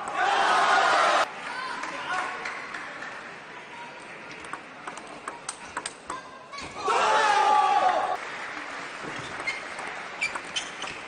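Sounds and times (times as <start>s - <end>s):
table tennis ball clicking off bats: 4.3s - 6.2s.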